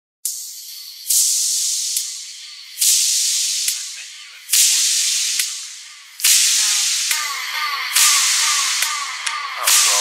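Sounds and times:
electronic dance music: 0:00.3 - 0:10.0.

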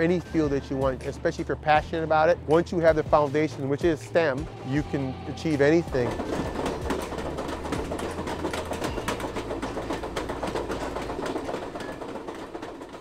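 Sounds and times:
train engine hum: 0:00.0 - 0:13.0
train wheels clattering: 0:00.0 - 0:13.0.

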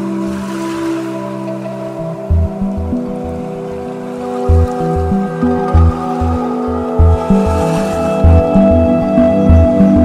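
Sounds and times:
relaxation music with held tones: 0:00.0 - 0:10.0
low pulsing beat: 0:01.9 - 0:10.0.

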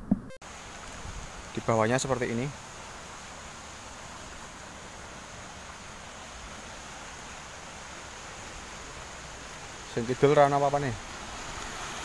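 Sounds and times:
outdoor background hiss: 0:00.0 - 0:12.0.

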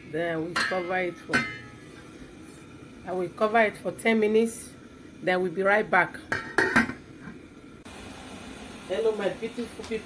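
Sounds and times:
metal pot lid clanking: 0:00.5 - 0:02.0, 0:06.3 - 0:07.1.

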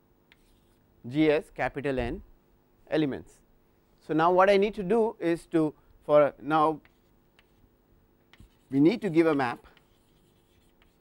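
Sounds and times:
chalk tapping and scratching: 0:00.3 - 0:00.8, 0:06.8 - 0:07.7, 0:08.3 - 0:11.0
man speaking: 0:08.7 - 0:09.7.

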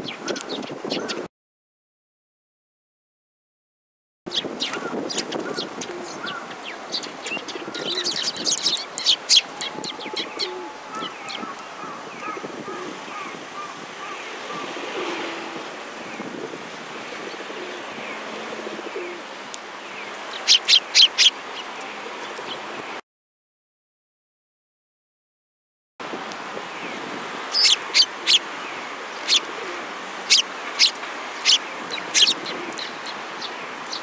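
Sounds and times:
sparrows chirping: 0:00.0 - 0:01.3, 0:04.3 - 0:14.8, 0:19.8 - 0:22.7, 0:26.7 - 0:34.0
pigeon cooing: 0:07.3 - 0:11.1, 0:13.6 - 0:15.6, 0:17.2 - 0:19.3, 0:29.3 - 0:32.9.

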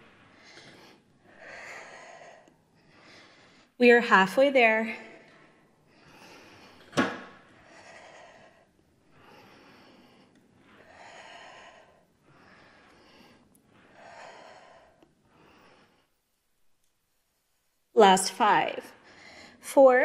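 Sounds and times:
woman breathing with exertion: 0:00.0 - 0:03.8, 0:04.9 - 0:16.5, 0:18.9 - 0:19.6.

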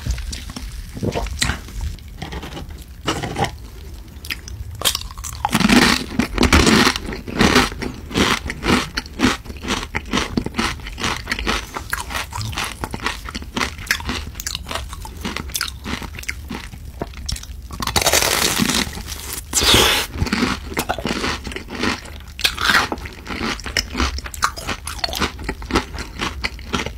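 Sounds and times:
chewing crispy fried food: 0:00.0 - 0:02.2, 0:03.3 - 0:26.9.

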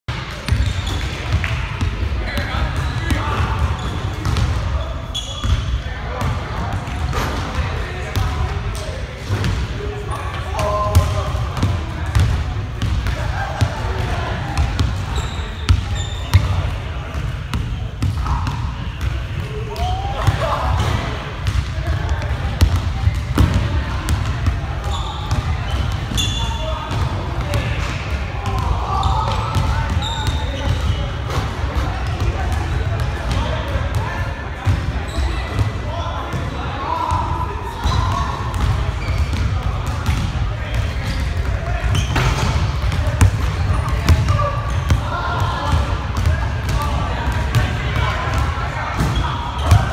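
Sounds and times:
players shouting and talking: 0:00.1 - 0:49.9.

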